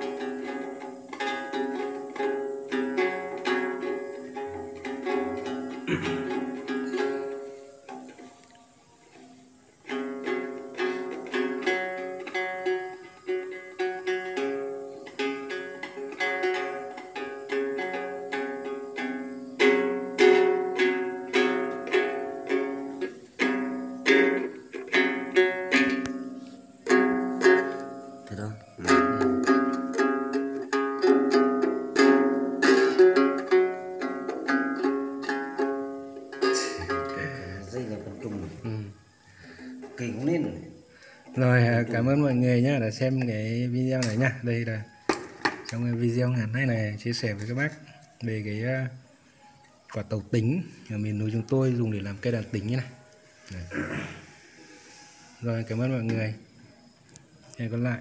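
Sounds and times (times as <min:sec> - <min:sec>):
plucked lute notes: 0:00.0 - 0:49.1.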